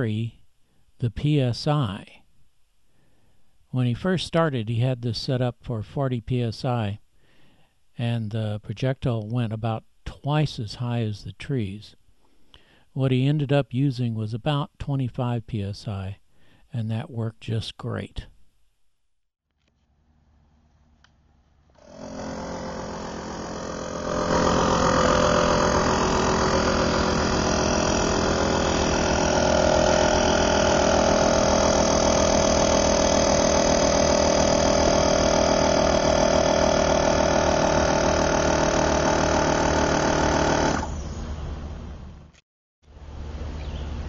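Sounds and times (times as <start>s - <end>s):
air pump running: 21.8s - 41.3s.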